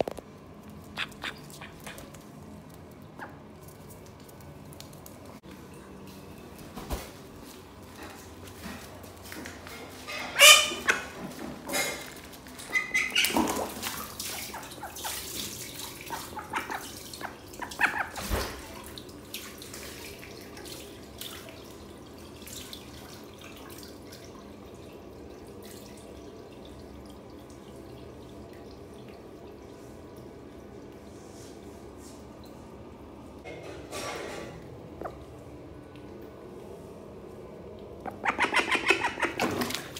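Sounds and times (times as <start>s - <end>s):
water drips: 0.4s - 6.7s, 10.9s - 31.2s, 34.6s - 39.9s.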